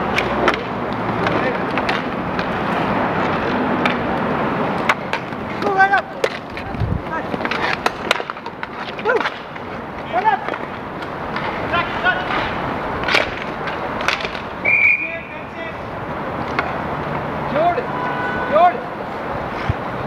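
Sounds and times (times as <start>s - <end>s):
hockey sticks clacking: 0.0s - 15.7s, 16.4s - 17.7s
skate wheels rolling and scraping: 0.0s - 17.4s, 19.0s - 20.0s
whistle blast: 14.6s - 15.3s
distant shouts: 14.6s - 15.9s, 17.5s - 19.0s.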